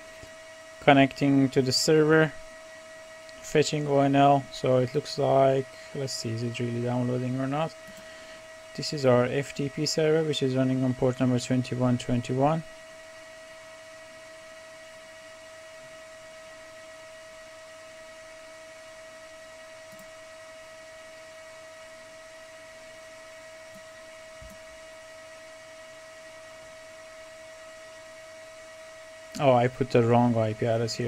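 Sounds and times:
electrical hum and hiss: 0.0 - 31.0.

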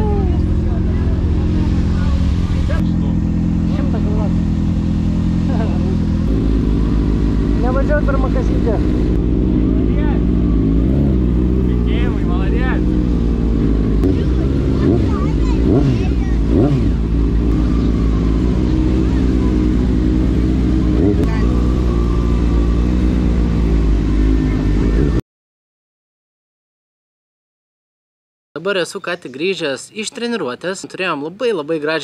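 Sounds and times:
motorcycle engine at low revs: 0.0 - 25.2.

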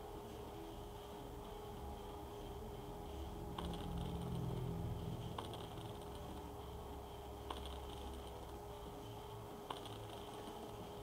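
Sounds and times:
low electrical hum: 0.0 - 11.0
computer mouse clicks: 3.6 - 4.3, 5.4 - 6.2, 7.5 - 8.6, 9.7 - 10.4.

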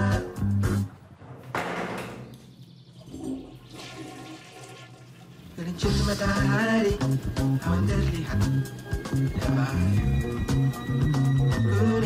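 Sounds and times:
toilet flushing: 3.0 - 6.6.

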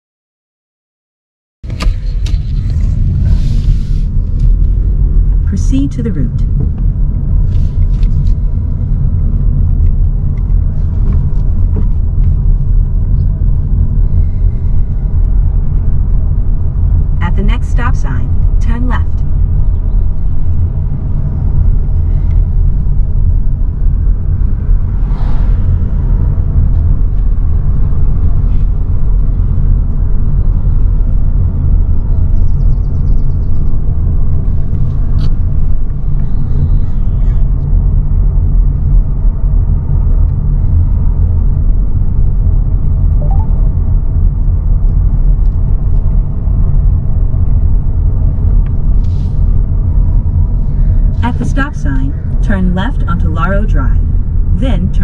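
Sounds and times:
car engine and tyres rumbling: 1.6 - 55.0.

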